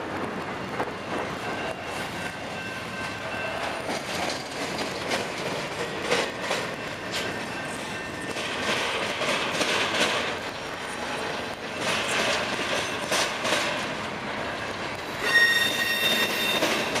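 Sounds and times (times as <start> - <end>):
freight train rolling past: 0.0 - 17.0
wheels clunking on rail: 0.1 - 17.0
high-pitched wheel squeal: 15.1 - 17.0.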